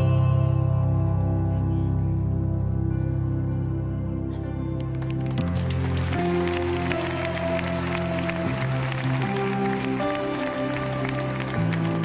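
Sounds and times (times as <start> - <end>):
hand clapping: 4.8 - 12.0.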